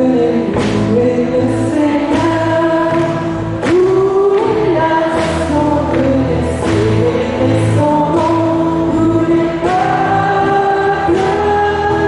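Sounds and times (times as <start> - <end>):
group of voices singing: 0.0 - 12.0
instrumental accompaniment with bass: 0.0 - 12.0.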